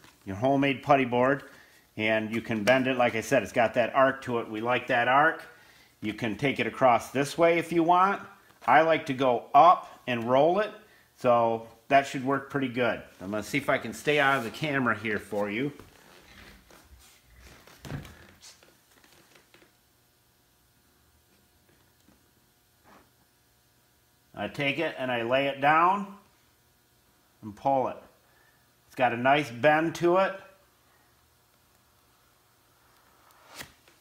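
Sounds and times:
rustling and handling noises: 13.0 - 19.8.

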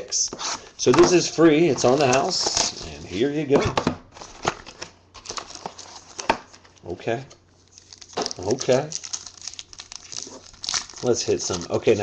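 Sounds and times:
plastic wrapper crinkling and tearing: 4.1 - 6.8, 7.6 - 12.0.

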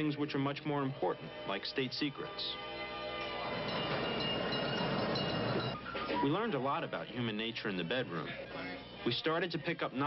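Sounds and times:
faint steady tones: 0.6 - 9.1
streetcar rumbling on rails: 3.6 - 5.8.

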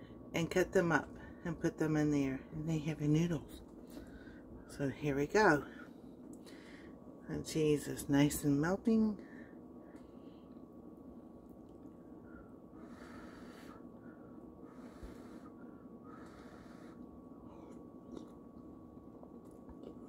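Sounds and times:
breaths through the nose: 14.6 - 17.8
quiet chewing: 16.0 - 20.0.

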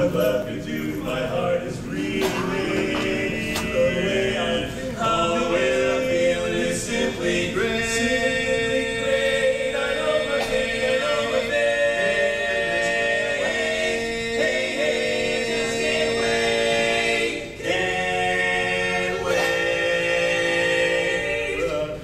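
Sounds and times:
male quartet singing a cappella: 0.0 - 22.0.

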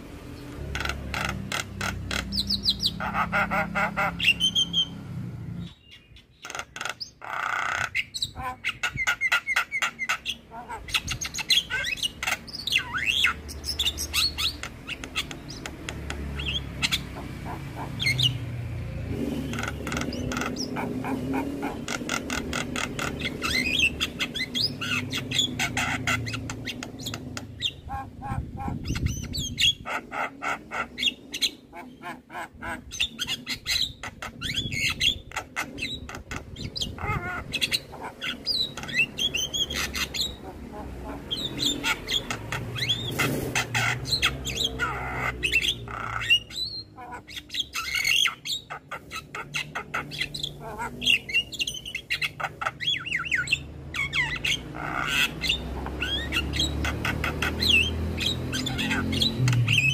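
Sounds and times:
myna bird singing: 0.0 - 59.9.

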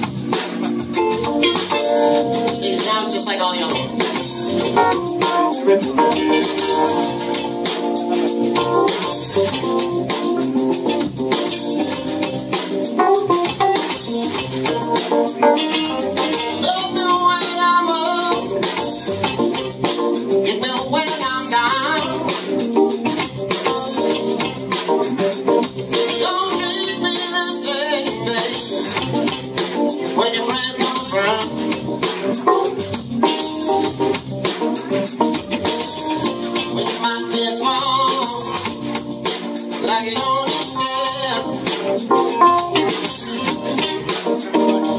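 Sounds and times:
live band playing: 0.0 - 44.9
man singing: 2.4 - 4.3, 5.2 - 6.8, 16.5 - 19.0, 20.4 - 22.5, 26.0 - 28.9, 30.0 - 31.7, 36.6 - 38.8, 39.8 - 42.3.

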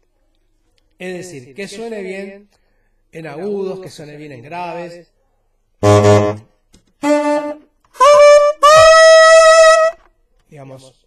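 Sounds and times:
saxophone notes climbing: 5.8 - 10.1.

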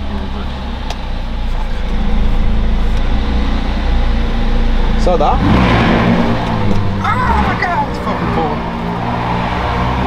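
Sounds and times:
car engine running at low revs: 0.0 - 10.0.

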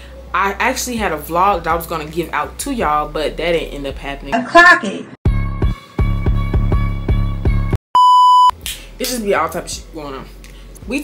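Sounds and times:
electronic beep: 8.0 - 8.5.

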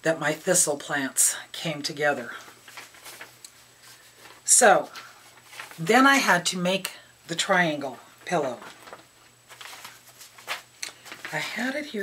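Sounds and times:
soft rustling: 2.1 - 5.9, 8.2 - 11.7.

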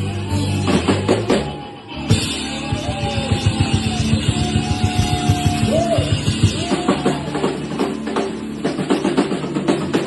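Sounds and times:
sustained electric guitar: 0.0 - 10.0
drum kit fast strokes: 0.6 - 10.0.

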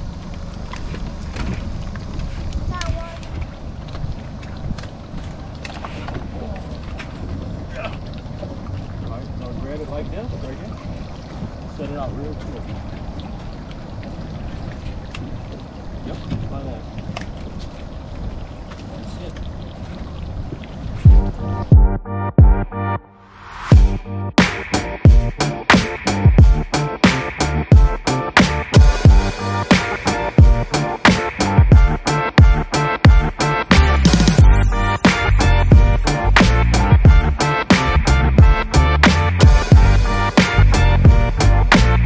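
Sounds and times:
wind rumble on microphone: 0.0 - 21.9
electronic music with heavy bass: 21.1 - 42.0.

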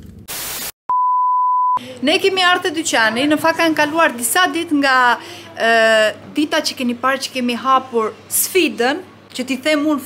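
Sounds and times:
static hiss burst: 0.3 - 0.8
high-pitched censor beep: 0.9 - 1.8.

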